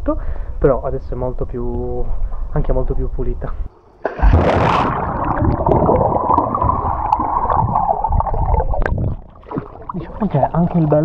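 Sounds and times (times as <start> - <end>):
person diving into pool splash: 4.0 - 9.9
muffled churning water: 4.0 - 11.0.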